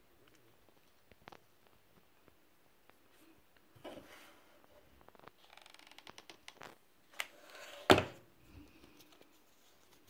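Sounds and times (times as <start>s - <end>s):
soft rustles of handling: 0.2s - 7.6s, 8.4s - 10.0s.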